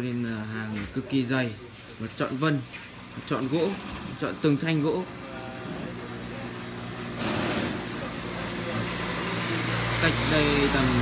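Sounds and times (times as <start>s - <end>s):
motor humming: 3.0s - 11.0s.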